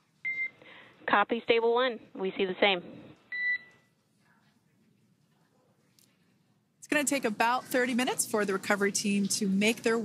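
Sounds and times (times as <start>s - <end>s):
faint radio hiss: 0.0s - 10.0s.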